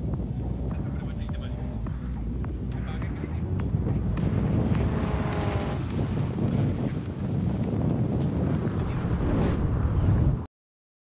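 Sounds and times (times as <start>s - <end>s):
wind noise on microphone: 0.0s - 10.5s
distant racing car engines: 0.2s - 7.0s.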